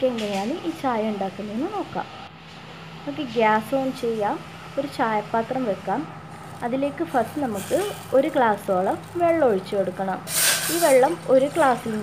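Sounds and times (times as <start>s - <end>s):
woman speaking: 0.0s - 2.1s, 3.1s - 12.0s
steady low hum: 0.0s - 12.0s.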